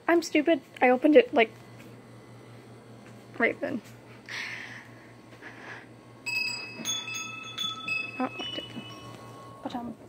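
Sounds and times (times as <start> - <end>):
metal chimes ringing: 6.2 - 10.0.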